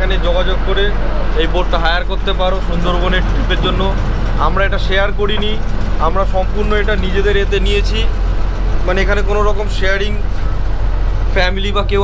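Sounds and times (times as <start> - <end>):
man talking: 0.0 - 8.1, 8.8 - 10.5, 11.3 - 12.0
boat engine droning: 0.0 - 12.0.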